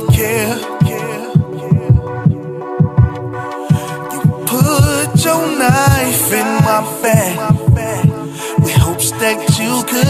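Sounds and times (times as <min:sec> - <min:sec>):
sustained synth chords: 0:00.0 - 0:10.0
deep kick drum: 0:00.1 - 0:09.6.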